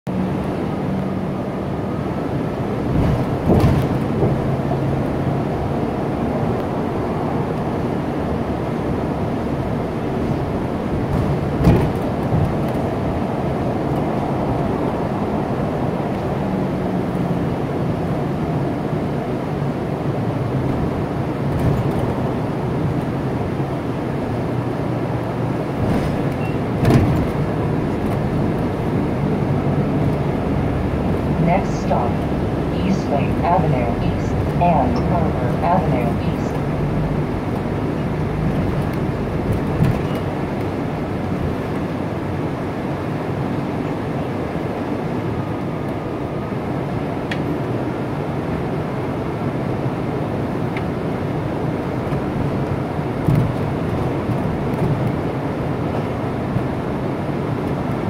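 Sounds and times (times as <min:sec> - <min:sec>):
bus engine and road noise: 0:00.0 - 0:58.0.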